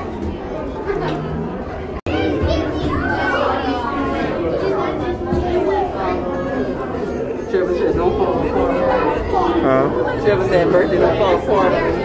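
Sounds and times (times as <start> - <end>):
children's voices: 0.0 - 10.2
crowd chattering indoors: 0.0 - 12.0.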